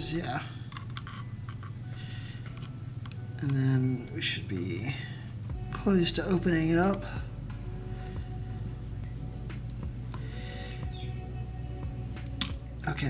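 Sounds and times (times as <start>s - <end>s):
quiet background music: 0.0s - 13.0s.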